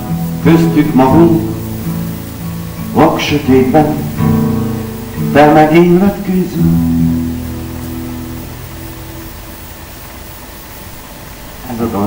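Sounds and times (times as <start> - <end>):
acoustic guitar chord ringing: 0.0 - 11.2
old recording hiss: 0.0 - 12.0.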